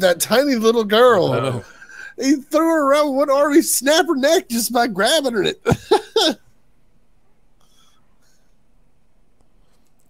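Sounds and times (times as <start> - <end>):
man laughing: 1.0 - 3.0, 5.1 - 6.4.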